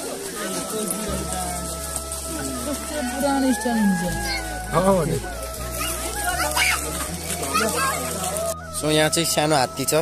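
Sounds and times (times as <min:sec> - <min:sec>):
people and children chattering: 0:00.0 - 0:10.0
background music with bass: 0:01.1 - 0:10.0.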